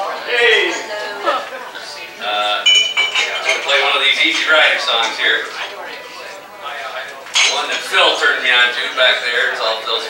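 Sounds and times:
people talking: 0.0s - 10.0s
high ringing clink: 2.6s - 4.5s, 7.4s - 7.8s.

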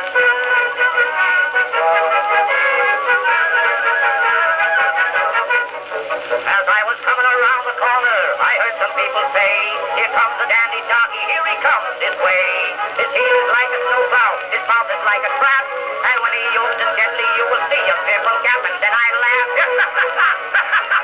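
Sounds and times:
small orchestra on phonograph: 0.0s - 21.0s.

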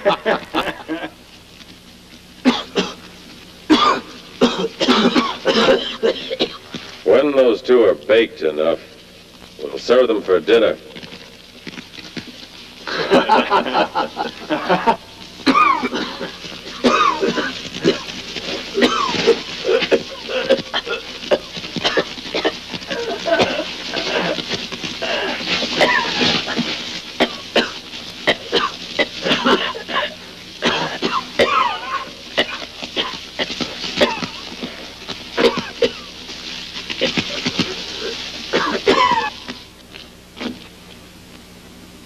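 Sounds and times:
men coughing and choking: 0.0s - 1.2s, 2.4s - 3.0s, 3.7s - 6.8s, 12.8s - 36.2s, 36.8s - 39.6s.

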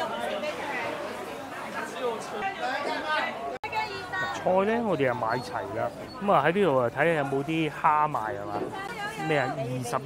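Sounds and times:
people talking at market stalls: 0.0s - 10.0s.

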